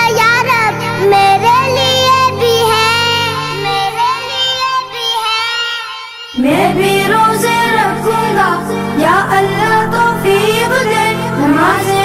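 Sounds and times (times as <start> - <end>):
child singing: 0.0 - 12.0.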